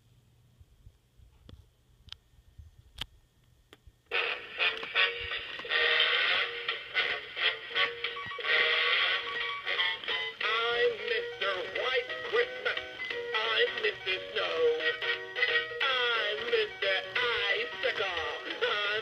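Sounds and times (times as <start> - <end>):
toy speaker music track: 4.1 - 19.0
man singing: 10.3 - 19.0.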